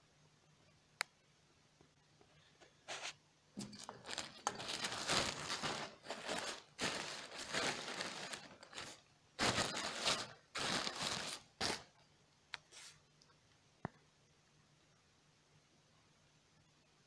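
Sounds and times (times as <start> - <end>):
plastic mailer bag crinkling: 3.6 - 11.9.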